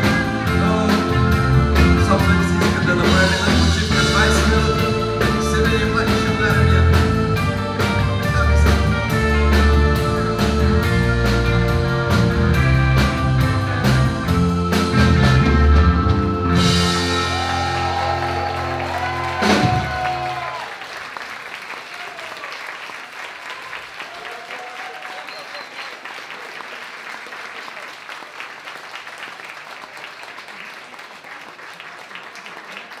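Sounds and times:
rock band playing: 0.0s - 20.7s
audience applause: 17.0s - 33.0s.

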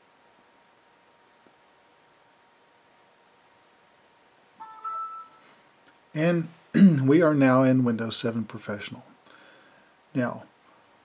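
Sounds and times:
bell-like startup chime: 4.6s - 5.5s.

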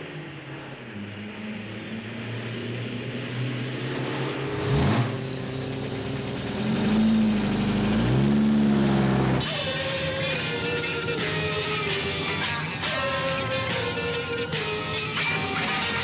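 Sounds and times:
car driving past: 0.0s - 9.5s
engine revving up: 0.0s - 13.1s
car engines running: 0.0s - 16.0s.

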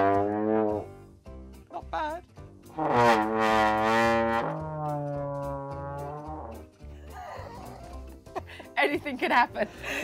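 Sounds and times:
trombone held notes: 0.0s - 0.9s, 2.7s - 6.6s.

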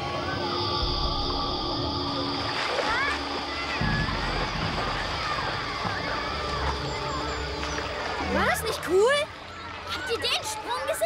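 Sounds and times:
children shouting: 0.0s - 11.0s
water splashing: 0.0s - 11.0s.

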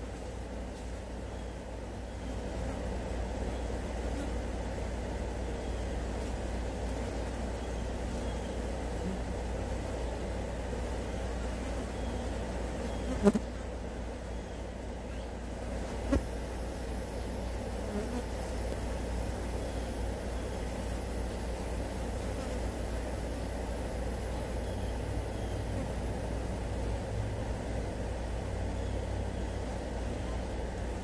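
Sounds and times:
flies buzzing: 0.0s - 31.0s
low steady rumble: 0.0s - 31.0s.

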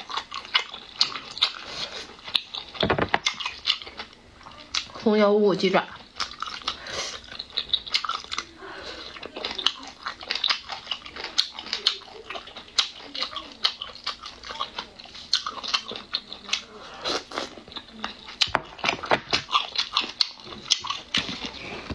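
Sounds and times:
person chewing with wet smacks: 0.0s - 5.1s, 5.9s - 21.9s.

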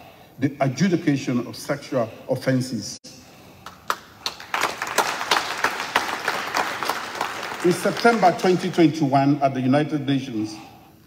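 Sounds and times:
audience applauding: 3.6s - 8.9s.

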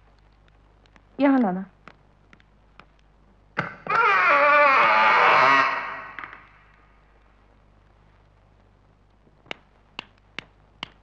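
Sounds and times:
wooden door hinges creaking: 3.6s - 6.6s.

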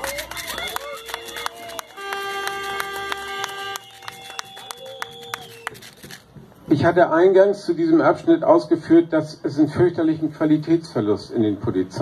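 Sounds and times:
audience clapping: 0.0s - 6.0s.

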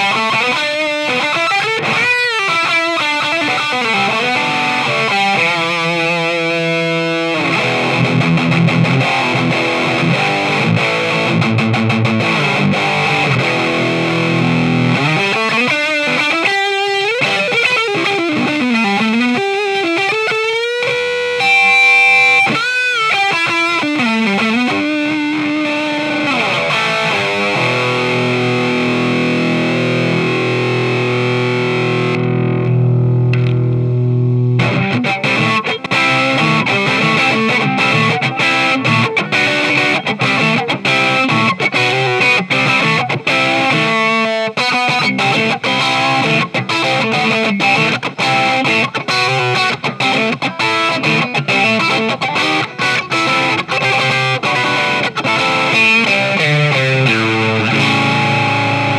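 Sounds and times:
distorted electric guitar: 0.0s - 58.9s.

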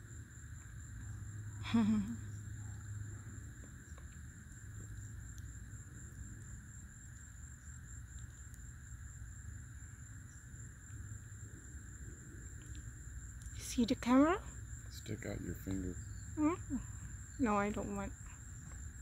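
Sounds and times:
faint ticks: 2.6s - 8.7s, 12.4s - 13.6s.

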